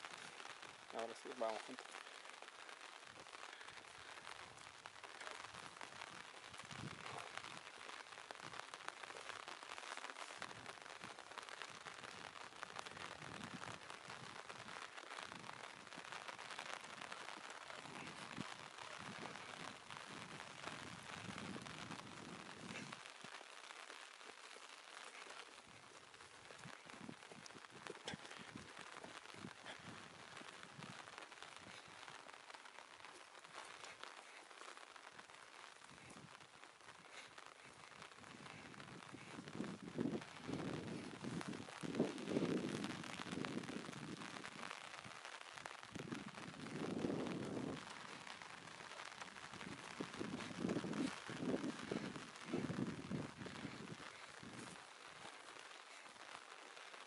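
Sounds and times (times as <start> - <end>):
rain pattering on an umbrella: 0.0 - 57.0.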